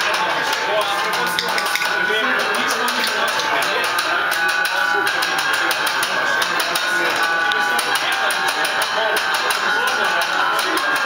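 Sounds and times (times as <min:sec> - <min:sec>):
guitar: 0:00.0 - 0:11.0
vocals: 0:00.0 - 0:11.0.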